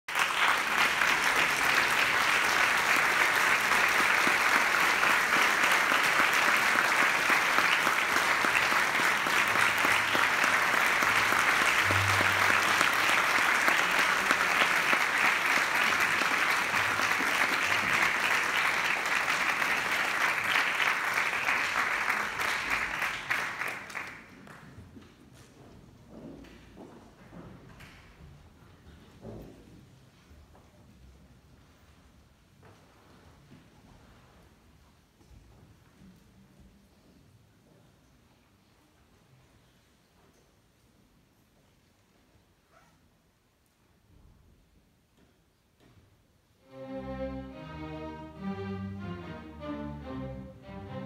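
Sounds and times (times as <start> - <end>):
audience applauding: 0.1 - 24.6.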